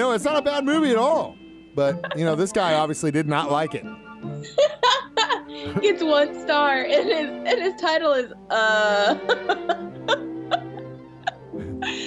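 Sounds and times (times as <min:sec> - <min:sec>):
person speaking: 0:00.0 - 0:03.9
soft background music: 0:00.0 - 0:12.0
laughing gasps: 0:09.2 - 0:12.0.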